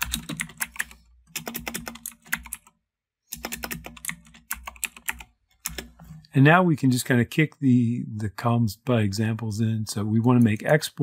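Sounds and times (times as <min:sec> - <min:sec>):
typing on computer keyboard: 0:00.0 - 0:05.9.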